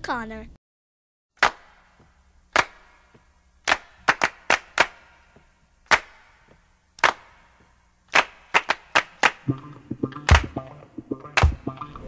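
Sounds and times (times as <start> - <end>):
sharp percussive hits: 1.4 - 12.0
music: 8.2 - 12.0.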